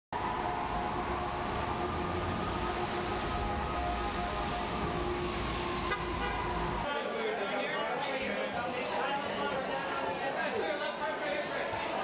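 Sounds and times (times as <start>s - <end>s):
street traffic rumble: 0.2s - 6.9s.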